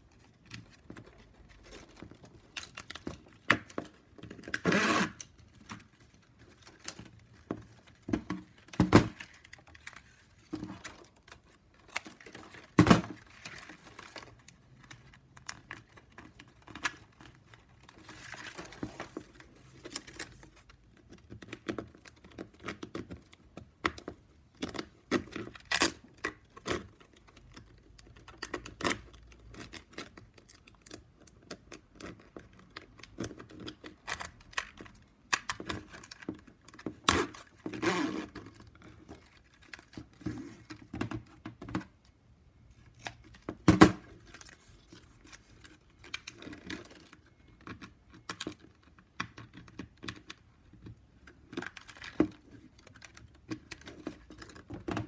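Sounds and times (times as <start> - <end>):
plastic strips rustling and scraping: 0.0 - 23.2.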